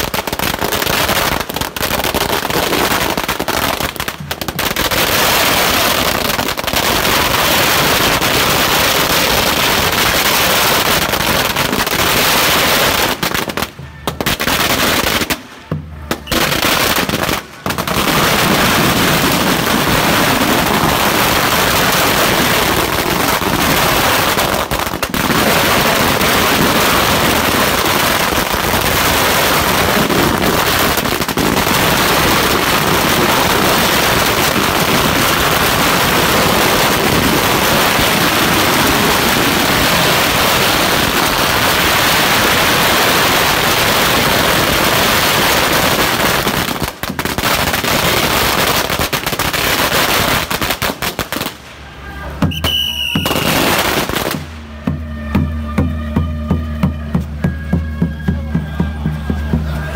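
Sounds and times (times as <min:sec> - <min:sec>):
firecrackers crackling: 0:00.0 - 0:59.9
music with steady beat: 0:54.5 - 0:59.9.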